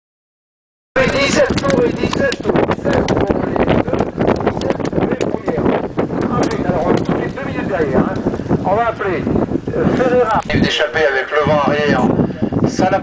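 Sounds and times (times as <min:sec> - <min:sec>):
indistinct voices talking: 0:01.0 - 0:13.0
wind on microphone: 0:01.0 - 0:13.0.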